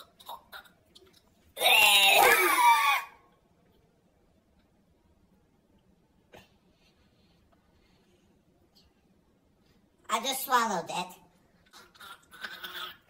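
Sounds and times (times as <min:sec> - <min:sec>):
boy yelling: 0:01.6 - 0:03.2.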